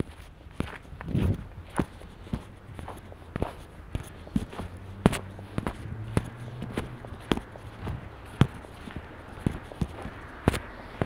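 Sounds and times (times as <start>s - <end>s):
footsteps on snow: 0.0s - 11.0s.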